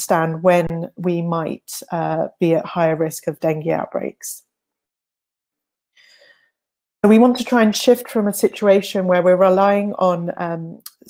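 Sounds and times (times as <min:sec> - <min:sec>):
faint short breath: 0:06.0 - 0:06.6.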